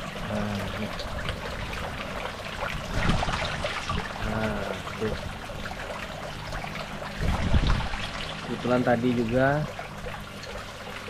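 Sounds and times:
water trickling into pond: 0.0 - 11.0.

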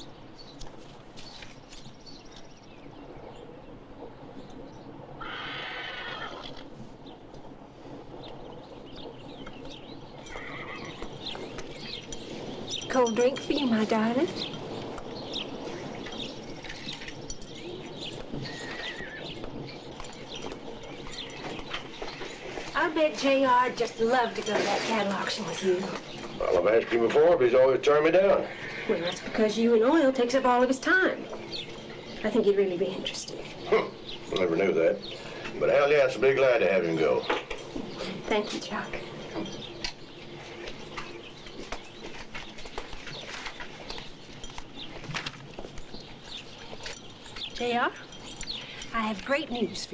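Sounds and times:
birds chirping: 0.0 - 49.9
steady background hiss: 0.0 - 49.9.

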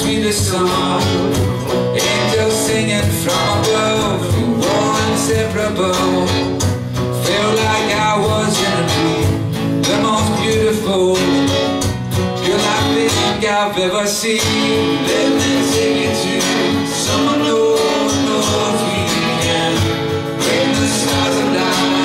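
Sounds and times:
acoustic guitars strummed: 0.0 - 22.0.

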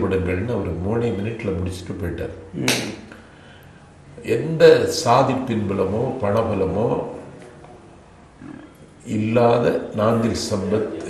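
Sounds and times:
man speaking: 4.2 - 7.2, 8.4 - 11.0.

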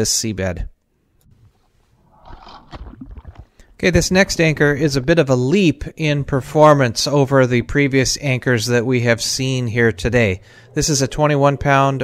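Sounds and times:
underwater water rush and gurgle: 2.0 - 3.8.

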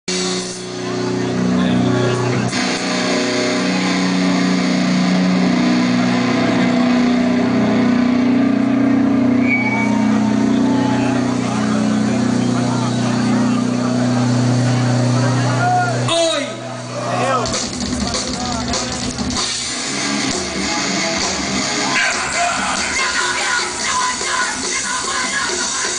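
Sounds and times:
band playing droning low notes: 0.0 - 25.9.

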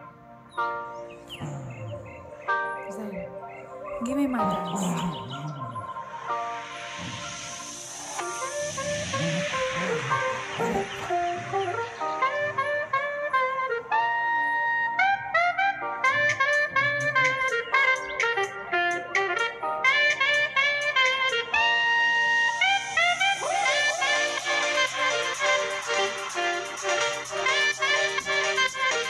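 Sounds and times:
tropical dance music with saxophone: 7.0 - 29.0.

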